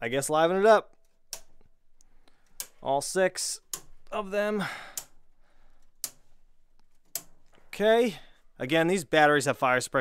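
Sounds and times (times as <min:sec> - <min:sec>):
breaker switch clicks: 0:00.9 - 0:01.7, 0:02.5 - 0:02.8, 0:03.6 - 0:04.2, 0:06.0 - 0:06.2, 0:07.0 - 0:07.6.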